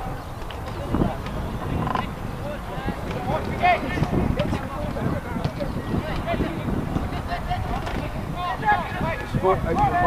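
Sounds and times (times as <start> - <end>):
voices calling out: 0.0 - 10.0
wind rumble on microphone: 0.0 - 10.0.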